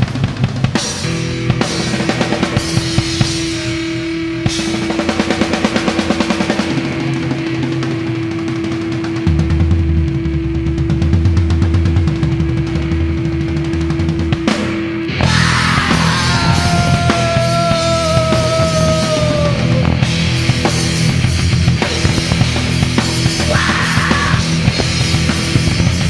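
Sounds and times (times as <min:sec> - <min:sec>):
drum kit fast rolls: 0:00.0 - 0:26.0
heavy bass and guitar: 0:00.0 - 0:26.0.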